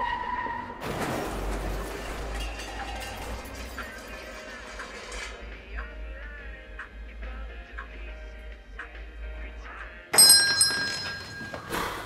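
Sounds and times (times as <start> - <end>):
noisy clatter: 0.8 - 5.7
door bell ringing: 10.2 - 11.8.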